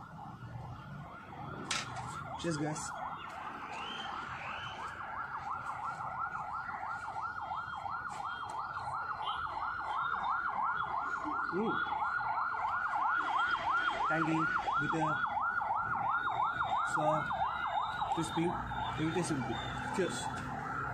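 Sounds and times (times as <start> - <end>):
siren yelping: 0.0 - 20.9.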